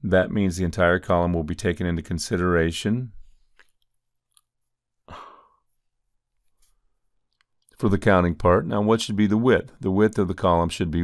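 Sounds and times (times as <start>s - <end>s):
man breathing: 5.1s - 5.8s.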